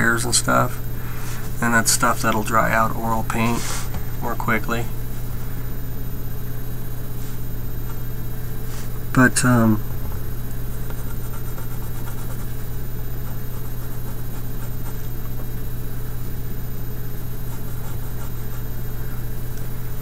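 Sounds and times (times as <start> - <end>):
steady low hum: 0.0 - 20.0
colored pencil scratching paper: 10.9 - 15.6, 17.4 - 18.8.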